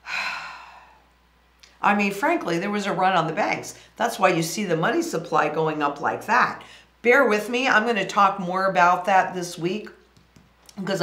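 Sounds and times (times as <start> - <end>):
woman sighing: 0.0 - 1.0.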